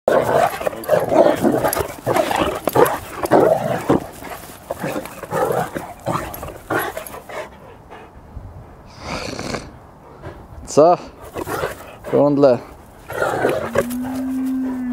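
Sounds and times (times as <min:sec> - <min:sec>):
dogs growling and snarling: 0:00.1 - 0:08.2, 0:08.9 - 0:14.9.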